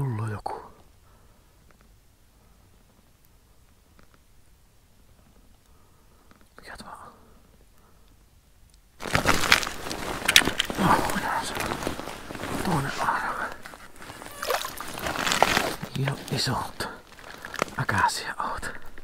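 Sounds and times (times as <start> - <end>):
handling clicks and crackles: 8.1 - 16.4, 17.1 - 17.8
water sloshing: 9.0 - 16.1
frozen snow crunching: 9.0 - 18.0.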